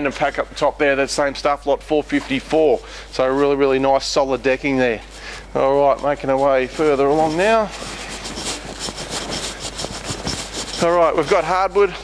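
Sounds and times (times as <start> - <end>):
man speaking: 0.0 - 7.8, 10.8 - 12.0
rustling and scraping from walking: 1.2 - 12.0.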